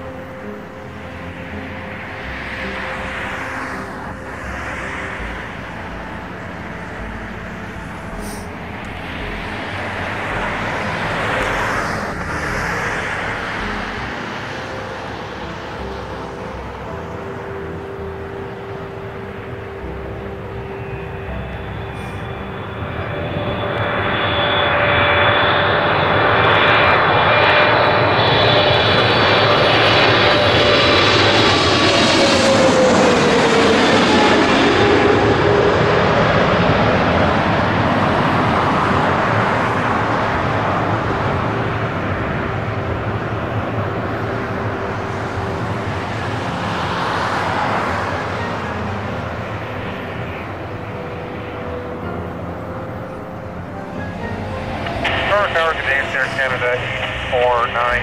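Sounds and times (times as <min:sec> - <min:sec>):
high engine whine: 0:00.0 - 0:58.0
jet airliner engines: 0:00.0 - 0:58.0.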